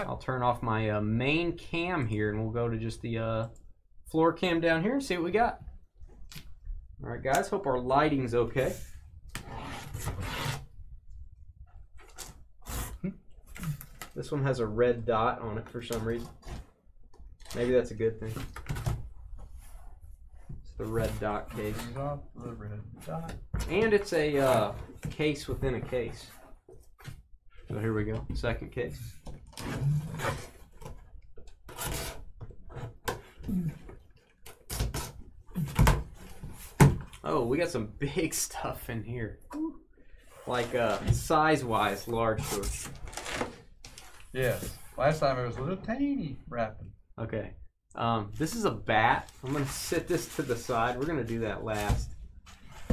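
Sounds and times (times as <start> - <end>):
hands scraping cardboard: 8.6 - 10.8, 12.1 - 13.8, 19.4 - 22.0, 23.7 - 26.6, 29.0 - 30.9, 40.2 - 45.2, 49.2 - 52.9.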